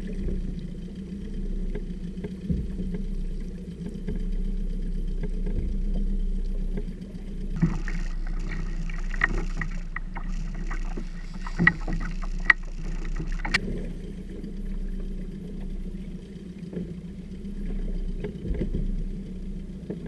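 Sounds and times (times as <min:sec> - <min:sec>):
outboard motor idling: 0:00.0 - 0:20.0
water splashing against hull: 0:00.0 - 0:20.0
knocks on hull: 0:02.5 - 0:03.0, 0:18.4 - 0:18.9.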